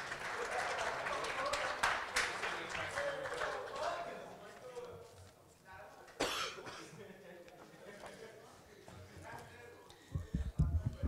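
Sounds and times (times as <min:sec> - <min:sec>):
person coughing: 0:06.2 - 0:07.0.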